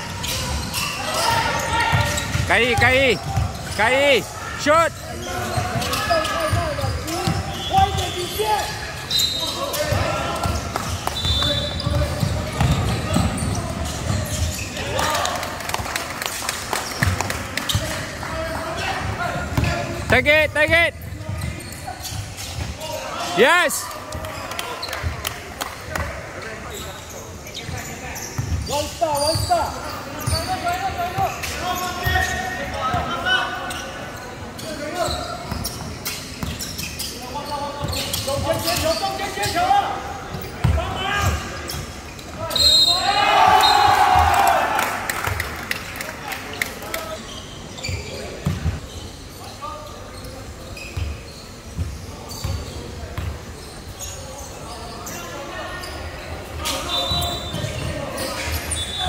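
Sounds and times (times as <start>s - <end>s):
voices in sports hall: 0.0s - 59.0s
loud shouting: 42.5s - 45.1s.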